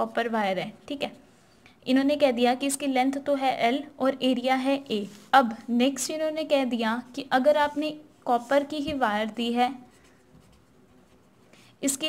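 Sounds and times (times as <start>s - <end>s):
woman speaking: 0.0s - 1.2s, 1.8s - 9.9s
pen scratching on paper: 7.5s - 11.5s.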